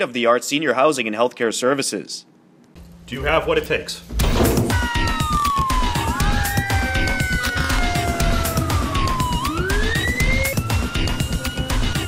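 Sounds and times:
background music with steady beat: 0:02.8 - 0:12.0
emergency siren wailing: 0:04.8 - 0:11.7.

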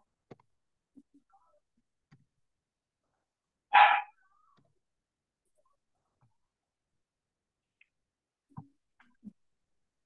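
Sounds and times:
dog barking: 0:03.7 - 0:04.1.

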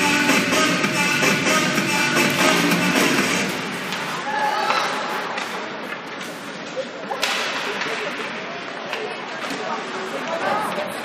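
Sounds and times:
hubbub of players and voices: 0:00.0 - 0:11.0.

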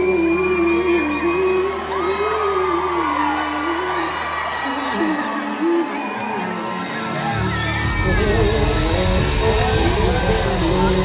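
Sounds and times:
crowd: 0:00.0 - 0:11.0
live band playing: 0:00.0 - 0:11.0
people singing: 0:00.0 - 0:11.0
heavy bass: 0:07.2 - 0:11.0.

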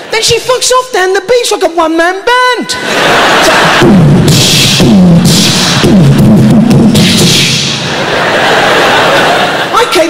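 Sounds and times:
man making vocal percussion: 0:03.7 - 0:07.8.

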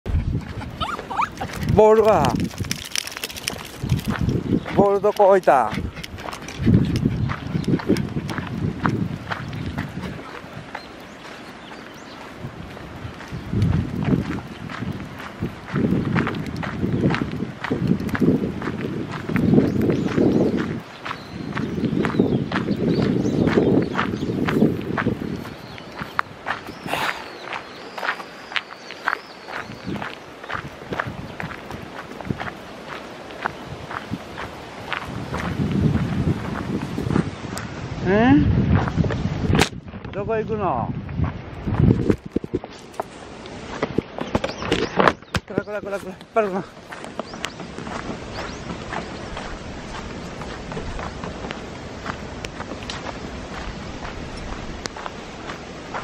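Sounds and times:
footsteps on gravel: 0:00.4 - 0:37.8, 0:38.7 - 0:40.3, 0:40.9 - 0:56.0
dog whining: 0:00.8 - 0:01.5.

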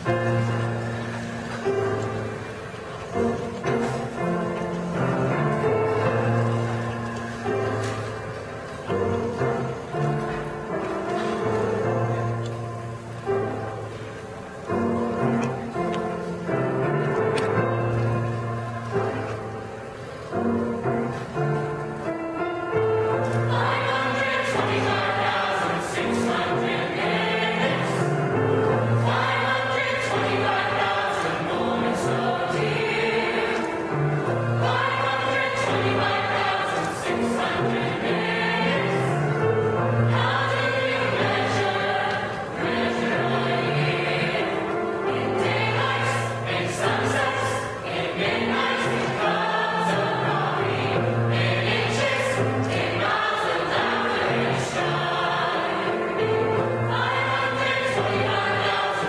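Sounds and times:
mixed choir singing: 0:00.0 - 0:59.0.

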